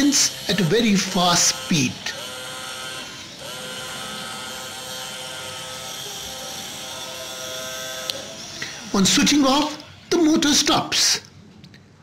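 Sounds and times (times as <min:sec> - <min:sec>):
toy motor whine: 0:00.0 - 0:10.7.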